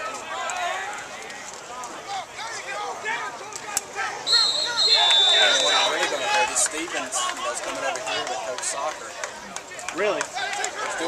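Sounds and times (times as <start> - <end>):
voices talking and shouting: 0.0 - 11.0
referee's whistle blast: 4.2 - 6.4.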